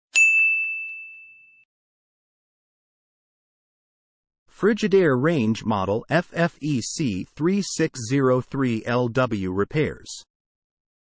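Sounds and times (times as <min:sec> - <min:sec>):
bright ding chime: 0:00.1 - 0:01.7.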